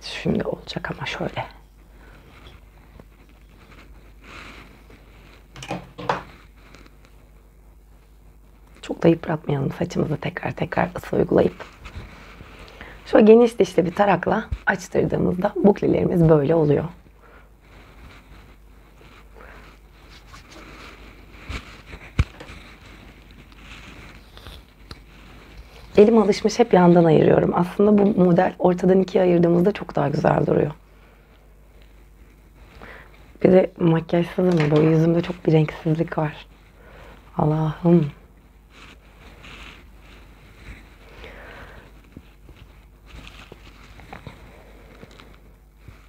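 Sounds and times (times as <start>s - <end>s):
comb rustling through curled hair: 0.1s - 46.0s.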